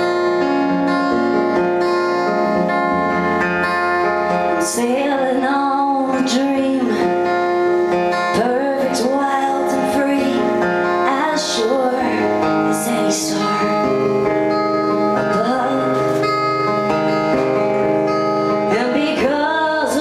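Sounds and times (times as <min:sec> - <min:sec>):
acoustic guitar: 0:00.0 - 0:20.0
woman singing: 0:04.3 - 0:16.7, 0:18.5 - 0:20.0.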